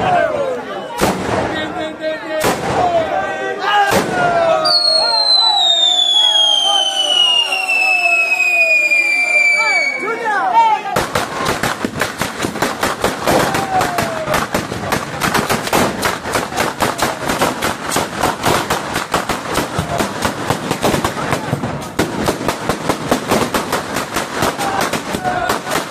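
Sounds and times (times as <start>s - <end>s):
rapid crackle of firecrackers: 3.9s - 10.0s, 10.9s - 25.9s
whistling firework falling in pitch: 4.6s - 10.1s.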